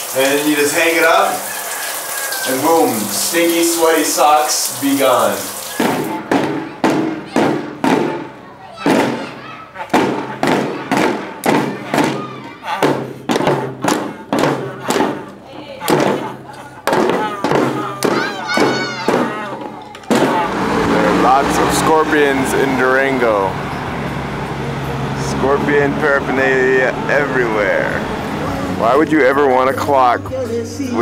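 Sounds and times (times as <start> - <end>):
drums beating march rhythm: 5.1 - 29.0
wavering brass horn notes: 19.3 - 29.0.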